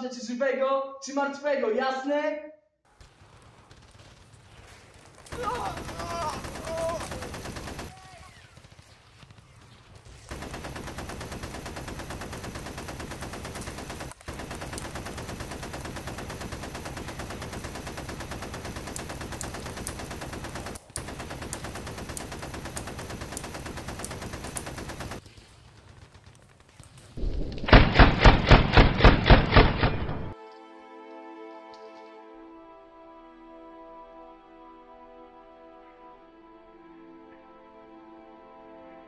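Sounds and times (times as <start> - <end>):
submachine gun firing: 3.0 - 26.5, 27.2 - 30.4.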